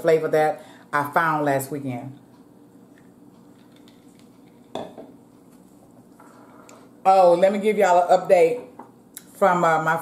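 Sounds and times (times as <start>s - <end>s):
tableware clinking on table: 4.7s - 5.1s.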